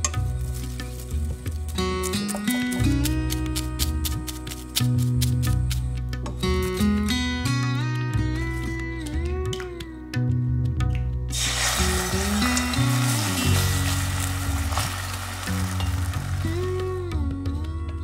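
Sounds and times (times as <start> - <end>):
background music: 0.0 - 18.0
egg sizzling in a frying pan: 11.3 - 16.5.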